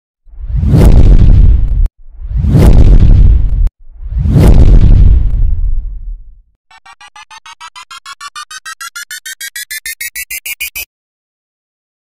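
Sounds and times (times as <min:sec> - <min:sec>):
whoosh with deep rumble: 0:00.3 - 0:06.5.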